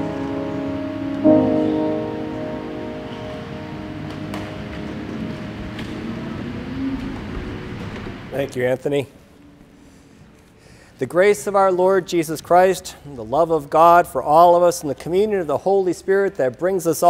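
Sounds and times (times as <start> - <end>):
grand piano chords: 0.0 - 8.4.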